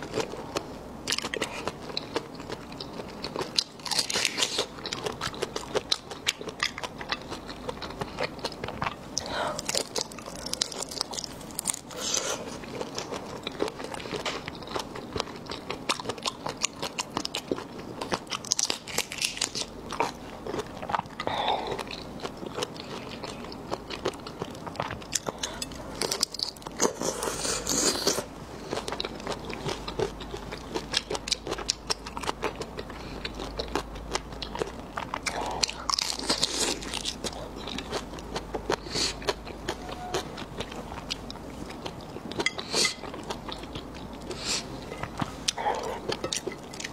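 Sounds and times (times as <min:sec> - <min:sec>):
wet chewing with clicks: 0:00.0 - 0:11.8
biting and chewing: 0:00.0 - 0:46.9.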